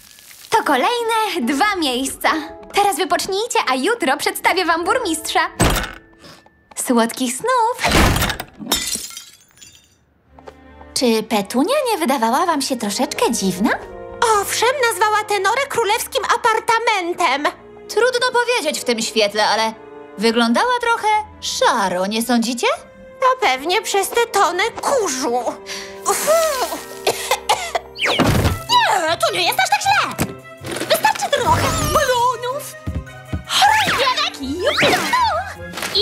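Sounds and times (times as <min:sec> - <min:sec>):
soft background music: 0:00.0 - 0:07.8, 0:10.2 - 0:36.0
plaque shattering on wooden floor: 0:07.9 - 0:10.0
cartoon woman coughing: 0:27.1 - 0:28.0.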